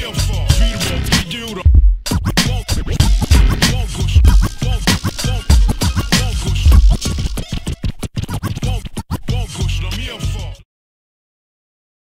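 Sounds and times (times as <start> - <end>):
hip hop beat: 0.0 - 10.6
turntable scratching: 0.0 - 10.6.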